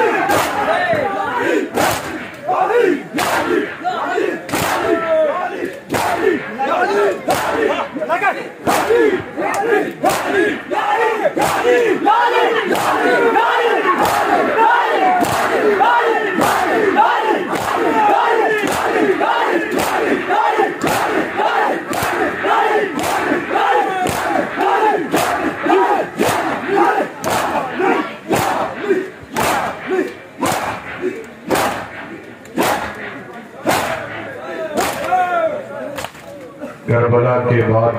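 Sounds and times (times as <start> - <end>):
men chanting together: 0.0 - 32.0
palms slapping chests: 1.8 - 2.4, 4.4 - 5.0, 5.7 - 7.8, 8.7 - 10.7, 12.7 - 35.2.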